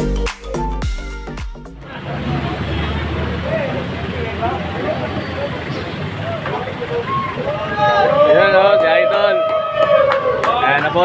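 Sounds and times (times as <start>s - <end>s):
vehicle engine running: 1.6s - 8.6s.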